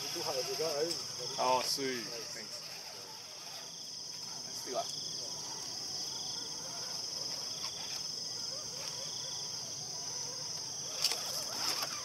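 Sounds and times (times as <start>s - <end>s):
insects chirping: 0.0s - 12.0s
low insect trill: 0.0s - 12.0s.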